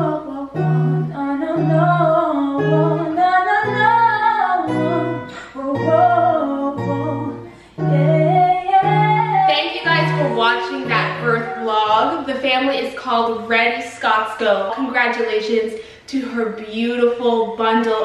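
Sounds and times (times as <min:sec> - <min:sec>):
person singing melody: 0:00.0 - 0:12.8
acoustic guitar plucking low notes: 0:00.0 - 0:15.2.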